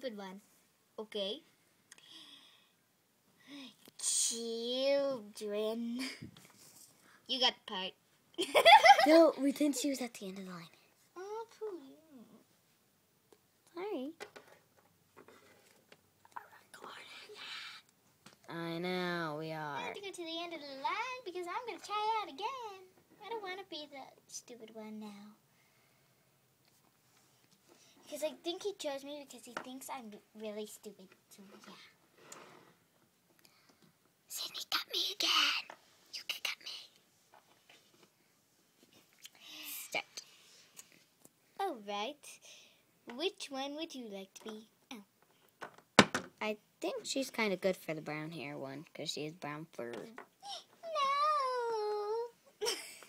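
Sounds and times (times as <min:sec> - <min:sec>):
child whispering: 0:16.3 - 0:17.9, 0:34.3 - 0:37.0
faint whispering: 0:16.3 - 0:17.9.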